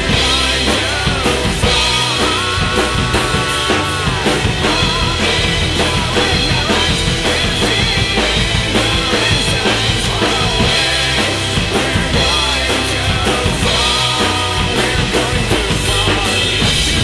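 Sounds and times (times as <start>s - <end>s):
drum kit played hard: 0.0s - 17.0s
recorded rock song: 0.0s - 17.0s.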